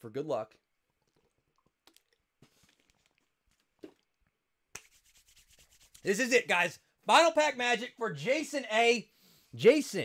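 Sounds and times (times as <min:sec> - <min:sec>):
hands rubbing together: 0:04.7 - 0:06.3.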